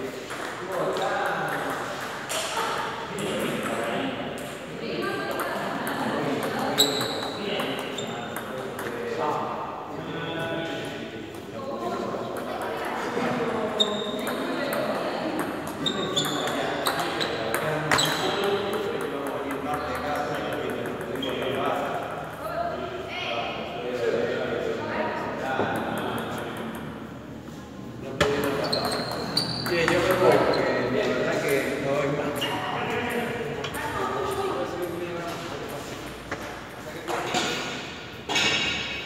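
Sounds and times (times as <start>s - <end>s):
voices in a large hall: 0.0s - 39.0s.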